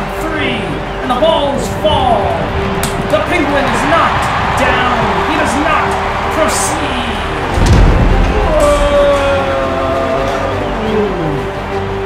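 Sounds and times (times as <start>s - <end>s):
background music: 0.0s - 12.0s
heavy low thud: 7.5s - 8.6s.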